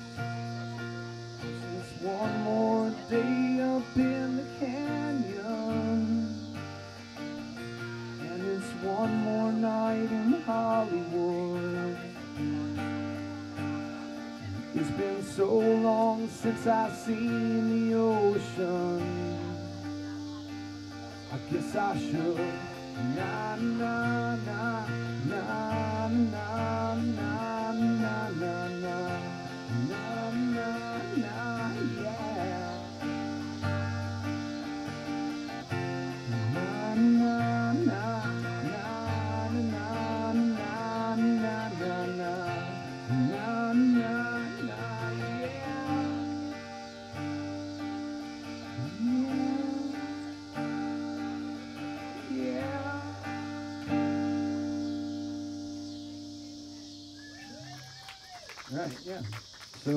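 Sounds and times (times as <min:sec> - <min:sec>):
acoustic guitar strumming: 0:00.0 - 0:59.2.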